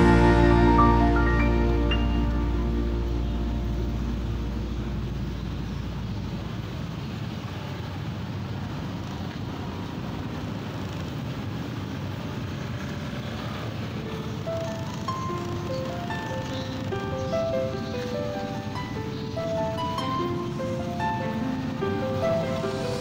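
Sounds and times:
background music: 0.0s - 5.6s, 14.4s - 23.0s
street traffic noise: 0.0s - 23.0s
scooter moving: 8.8s - 23.0s.

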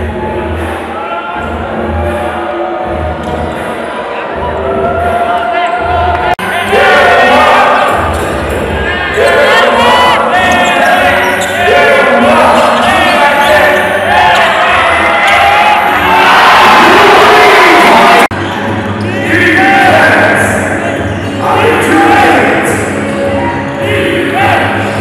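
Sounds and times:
arena music with singing: 0.0s - 25.0s
crowd noise: 0.0s - 25.0s.

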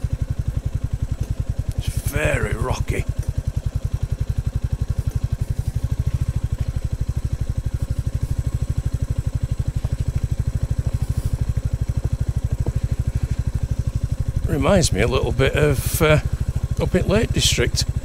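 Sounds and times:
motorcycle engine at low revs: 0.0s - 18.0s.

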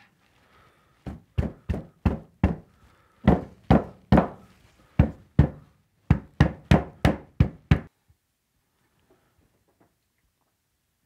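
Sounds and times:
hand slapping wooden box: 3.3s - 7.9s.

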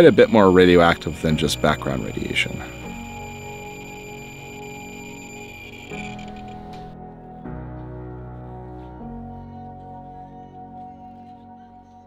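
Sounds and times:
survey meter high-pitched tone: 0.0s - 6.9s
soft background music: 0.0s - 12.0s.

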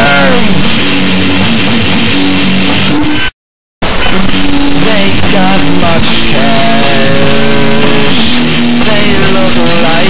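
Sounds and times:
distorted electric guitar rock: 0.0s - 10.0s.

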